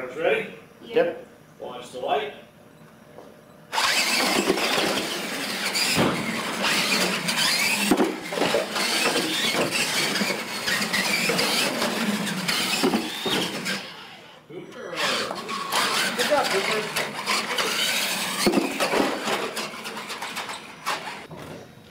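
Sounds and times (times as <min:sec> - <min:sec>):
toy trucks squealing whine: 0:03.7 - 0:21.3.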